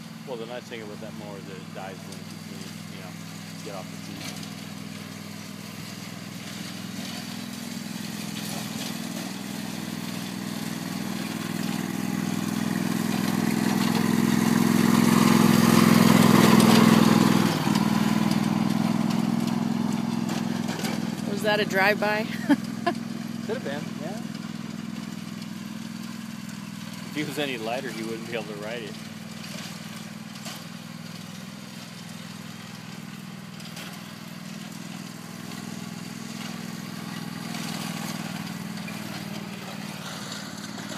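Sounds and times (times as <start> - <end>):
riding lawn mower engine: 0.0 - 40.9.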